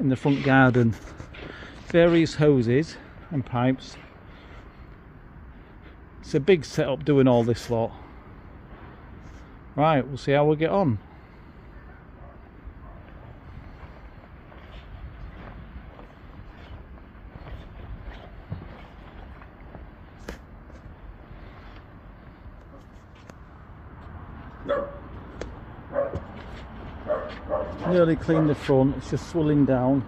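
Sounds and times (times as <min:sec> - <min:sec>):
outdoor background noise: 0:00.0 - 0:30.0.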